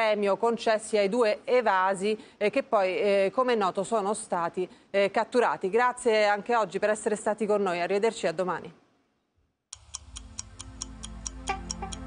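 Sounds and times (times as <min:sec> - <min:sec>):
ticking beat: 0:09.7 - 0:12.0
pitched musical notes: 0:10.0 - 0:12.0.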